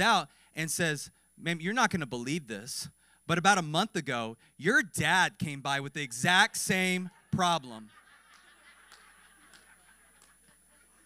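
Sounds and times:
faint audience laughter: 0:06.8 - 0:11.0.

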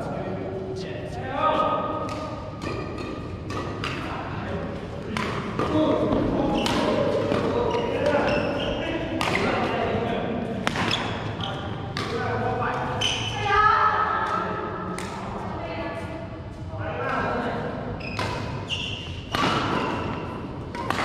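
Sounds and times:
racquets striking shuttlecock: 0:02.0 - 0:04.1, 0:05.1 - 0:08.4, 0:09.1 - 0:09.8, 0:10.6 - 0:11.3, 0:18.1 - 0:21.0.

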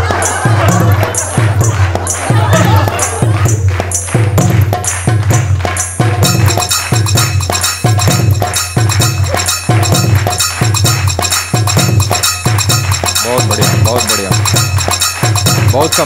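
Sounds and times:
music with fast percussive beat: 0:00.0 - 0:16.0.

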